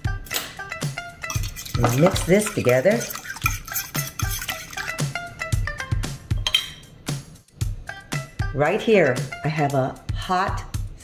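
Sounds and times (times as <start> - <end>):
background music: 0.0 - 11.0
fork whisking eggs against glass: 1.2 - 5.3.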